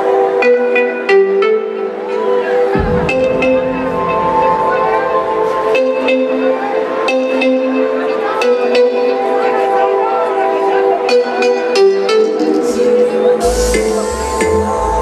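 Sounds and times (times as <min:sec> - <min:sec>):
held synthesizer chords: 0:01.2 - 0:08.4, 0:11.7 - 0:15.0
voice over music: 0:02.5 - 0:08.5
sharp percussion hits: 0:02.8 - 0:06.8.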